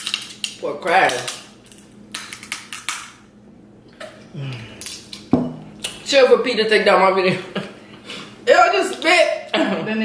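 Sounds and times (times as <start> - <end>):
crab shell clicking and snapping: 0.0 - 3.2
low voice hum: 4.3 - 4.8.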